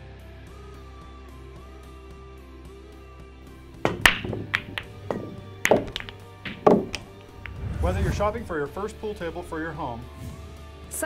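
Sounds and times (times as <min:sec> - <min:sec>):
billiard balls clacking: 0:03.6 - 0:08.5.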